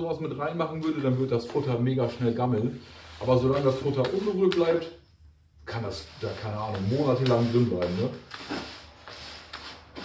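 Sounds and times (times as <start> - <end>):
hands kneading grainy mix: 0.0 - 4.9, 5.6 - 10.0
faint scrapes in bucket: 5.8 - 10.0.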